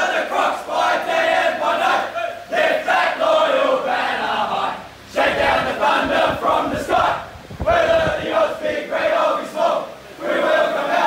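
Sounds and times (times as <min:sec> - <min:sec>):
team singing in unison: 0:00.0 - 0:11.0.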